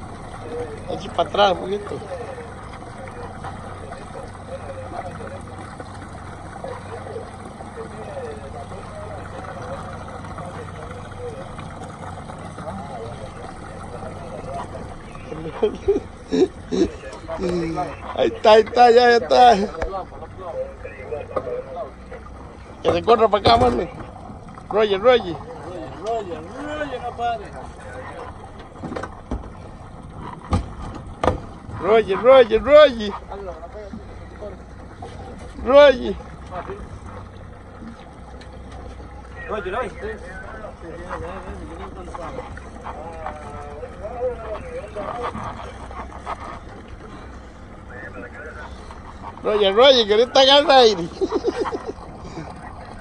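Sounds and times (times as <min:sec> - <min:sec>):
boat engine running: 0:00.0 - 0:53.0
faint voices: 0:00.0 - 0:53.0
water washing against hull: 0:00.0 - 0:53.0
sharp knocks: 0:30.5 - 0:31.6.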